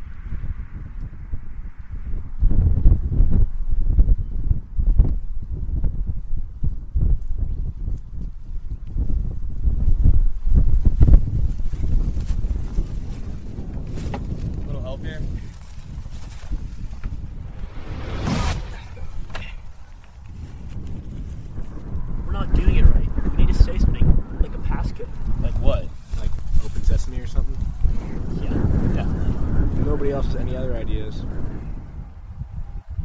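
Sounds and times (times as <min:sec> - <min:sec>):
wind buffeting microphone: 0:00.0 - 0:33.0
rustling: 0:15.1 - 0:21.8.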